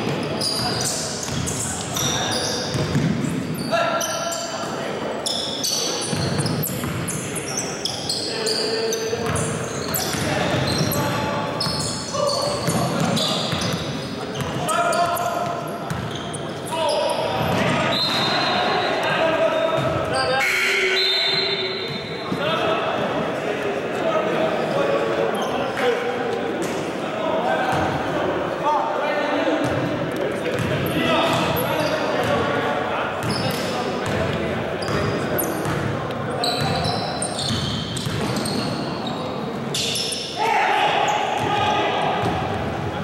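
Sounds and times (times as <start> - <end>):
sneakers squeaking: 0.0 - 22.6, 24.6 - 25.9, 27.6 - 28.1, 29.6 - 32.6, 33.2 - 43.0.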